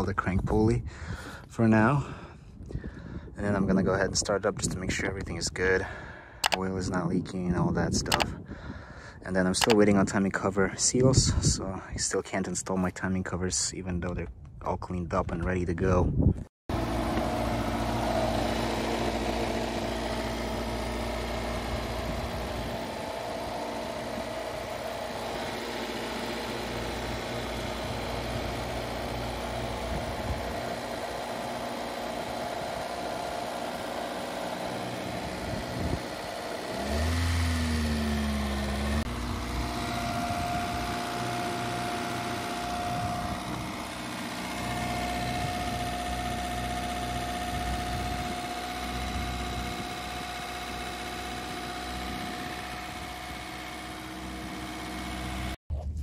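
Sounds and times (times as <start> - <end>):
car engine idling: 16.7 - 55.6.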